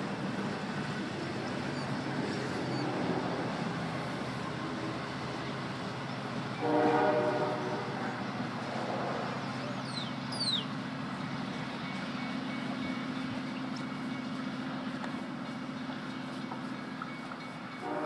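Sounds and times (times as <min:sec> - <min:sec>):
diesel locomotive engine droning: 0:00.0 - 0:18.0
train horn blast: 0:06.6 - 0:08.2, 0:17.8 - 0:18.0.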